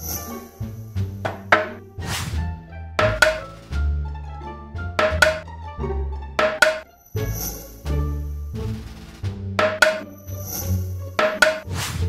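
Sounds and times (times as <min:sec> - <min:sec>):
cartoon background music: 0:00.0 - 0:12.0
hammer knocking wood: 0:03.0 - 0:03.5, 0:05.0 - 0:05.4, 0:06.4 - 0:06.8, 0:09.6 - 0:10.0.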